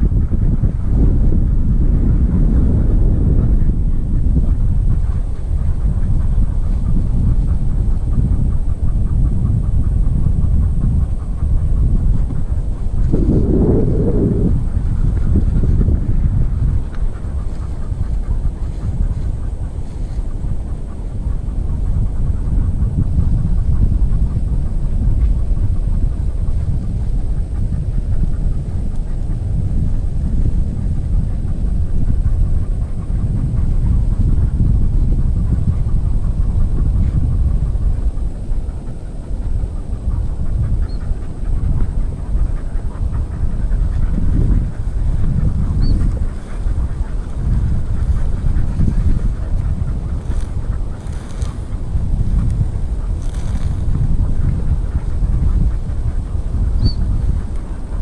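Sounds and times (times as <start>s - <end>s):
wind buffeting microphone: 0.0s - 58.0s
rustling through grass: 44.2s - 58.0s.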